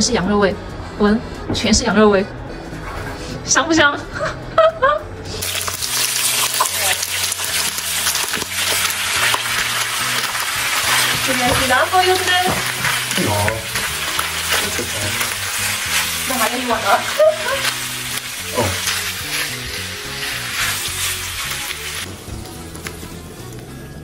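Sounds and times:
background music with bass: 0.0 - 24.0
meat sizzling in a wok: 5.4 - 23.7
spatula scraping a wok: 7.5 - 22.1.

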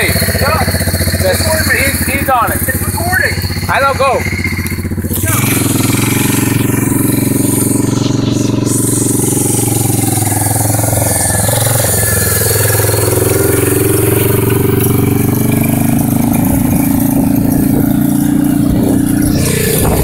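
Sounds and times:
quad engine revving: 0.0 - 20.0.

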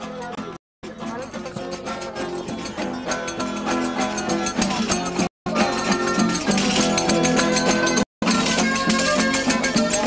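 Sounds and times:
acoustic guitars strummed fast: 0.0 - 10.0.

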